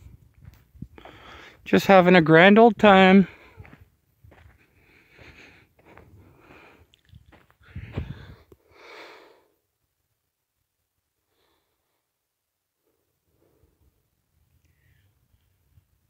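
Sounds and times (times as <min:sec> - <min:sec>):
soft breathing: 0:00.9 - 0:01.6, 0:03.3 - 0:09.6, 0:11.2 - 0:12.2, 0:12.8 - 0:15.8.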